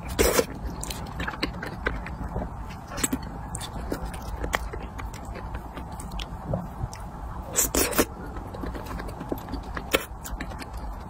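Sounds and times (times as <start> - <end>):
wet chewing: 0.0 - 11.0.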